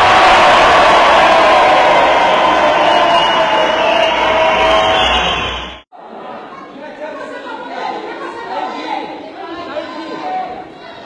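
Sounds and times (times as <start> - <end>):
loud dense crowd noise: 0.0 - 11.0
murmur of many voices: 5.9 - 11.0.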